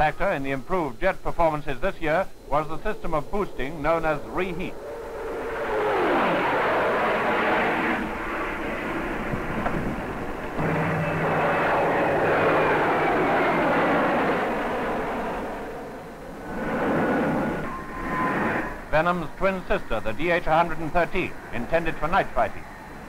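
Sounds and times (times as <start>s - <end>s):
jet fighter flying past: 1.1s - 23.0s.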